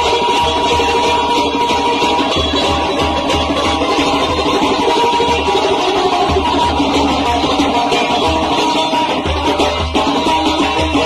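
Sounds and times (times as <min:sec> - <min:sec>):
folk music playing: 0:00.0 - 0:11.0.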